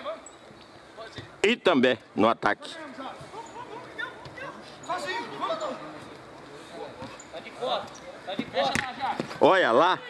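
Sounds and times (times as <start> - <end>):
men calling out: 2.8 - 6.0.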